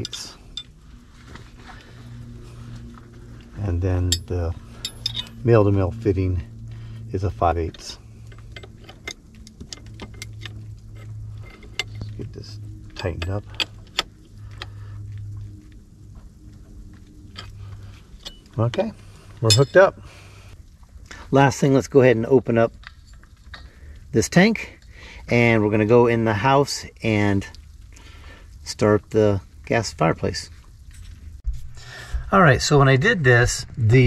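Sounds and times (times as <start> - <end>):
low steady hum: 0.0 - 34.0
metallic clinks of wrenches: 4.0 - 5.4, 18.2 - 18.6, 19.4 - 20.0.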